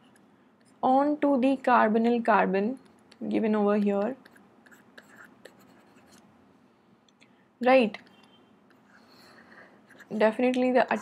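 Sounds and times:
stylus scratching on tablet: 4.0s - 6.2s, 8.1s - 11.0s.

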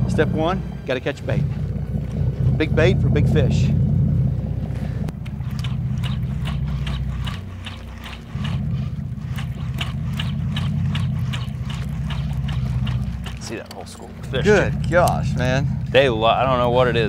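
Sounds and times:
boat engine drone: 0.0s - 17.0s.

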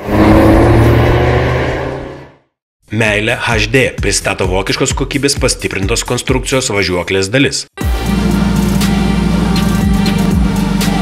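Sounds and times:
car engine revving: 0.0s - 2.5s, 7.9s - 11.0s.

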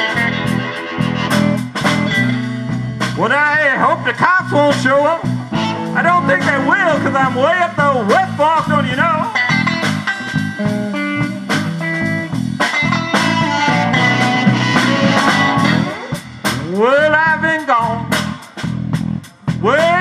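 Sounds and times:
blues harmonica bending notes: 0.0s - 16.8s
electric blues band playing: 0.0s - 20.0s.

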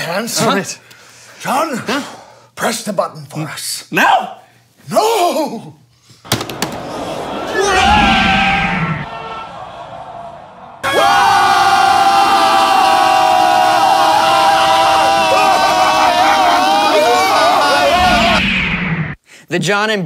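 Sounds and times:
men yelling: 6.6s - 18.4s.

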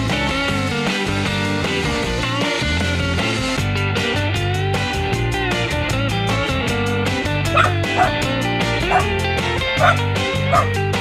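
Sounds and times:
cartoon dog yipping: 7.6s - 8.2s, 8.9s - 9.1s, 9.8s - 10.7s.

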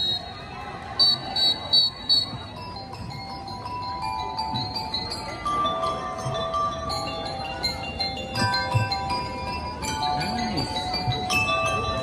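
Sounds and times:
high whistle toot: 0.0s - 0.4s, 1.0s - 2.5s
bell lyres ringing a melody: 0.0s - 12.0s.

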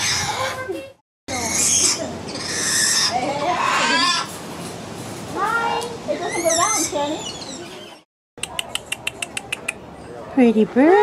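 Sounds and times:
parrot screeching: 0.0s - 0.6s, 1.3s - 4.3s, 6.2s - 8.0s.

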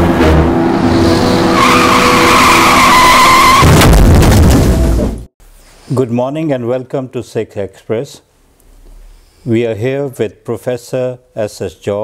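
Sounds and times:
long high screech: 0.7s - 3.7s.

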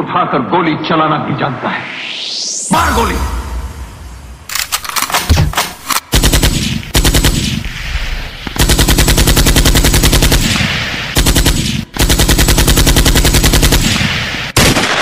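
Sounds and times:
machine-gun fire with bass thumps: 5.1s - 7.8s, 8.4s - 15.0s.

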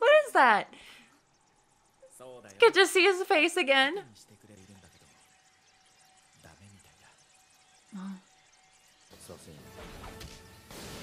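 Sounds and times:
faint cartoon dialogue: 7.9s - 8.3s.

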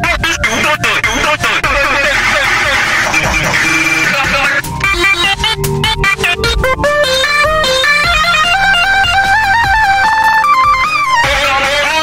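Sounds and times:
electronic song with distorted lead: 0.0s - 12.0s.

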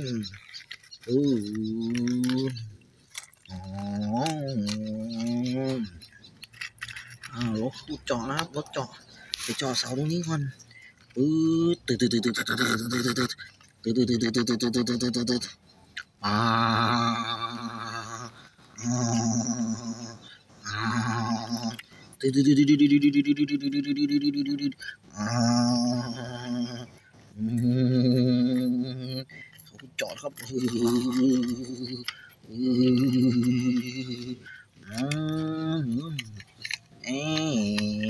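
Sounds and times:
toy trucks clicking on gravel: 0.0s - 38.0s
man imitating engine growl: 3.5s - 6.0s, 16.2s - 29.4s, 30.0s - 36.4s, 37.0s - 38.0s.

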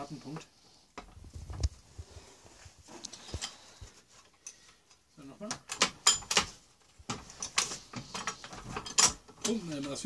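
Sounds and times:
hydraulic jack clicking and creaking: 4.3s - 10.0s.

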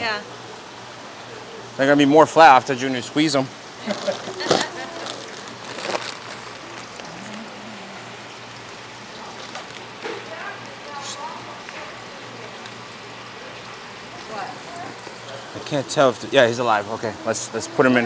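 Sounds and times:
steady hum: 0.0s - 18.0s
plastic bags rustling: 3.8s - 7.5s, 9.1s - 9.9s.

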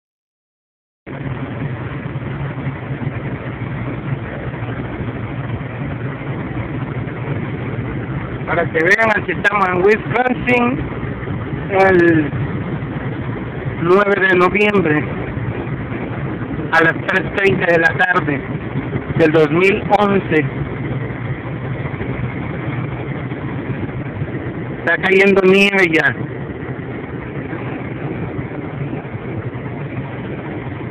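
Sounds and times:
truck engine drone: 1.1s - 30.9s.

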